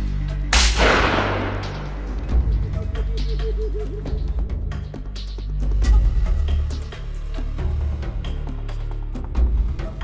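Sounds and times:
background music: 0:00.0 - 0:10.0
shotgun shot: 0:00.6 - 0:02.2.

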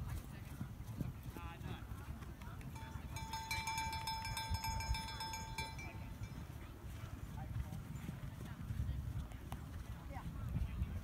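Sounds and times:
faint distant voices: 0:00.0 - 0:11.0
horse hoofbeats: 0:00.0 - 0:11.0
wind on microphone: 0:00.0 - 0:11.0.

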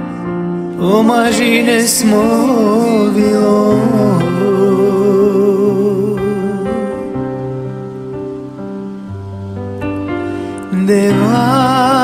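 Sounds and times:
digital keyboard chords: 0:00.0 - 0:12.0.

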